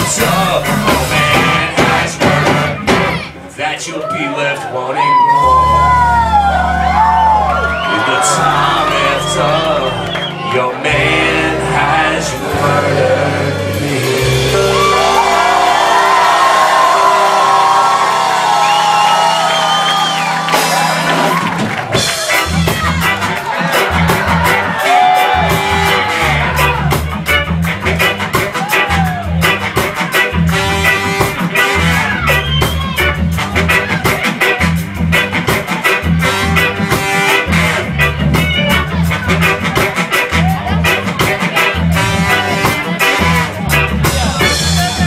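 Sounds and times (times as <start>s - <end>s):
ska band with horns and organ: 0.0s - 3.8s, 5.2s - 45.0s
audience whooping and shouting: 2.8s - 10.9s, 14.4s - 30.1s, 31.7s - 34.6s.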